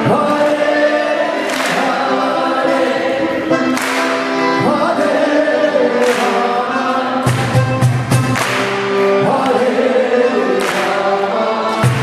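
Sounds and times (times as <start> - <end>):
group chanting devotional melody: 0.0 - 12.0
sustained accompaniment: 0.0 - 12.0.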